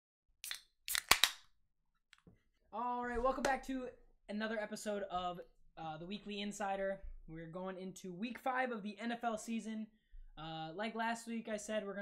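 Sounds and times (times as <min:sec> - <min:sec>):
drink cans cracked open: 0:00.4 - 0:01.4.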